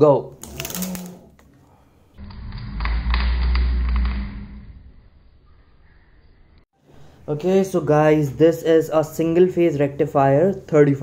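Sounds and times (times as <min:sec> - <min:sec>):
alternator whirring rumble: 0:02.2 - 0:06.0.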